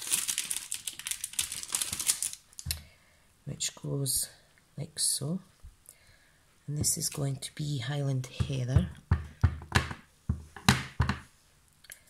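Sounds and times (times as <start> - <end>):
ink pad knocking on stamp: 8.4 - 11.3.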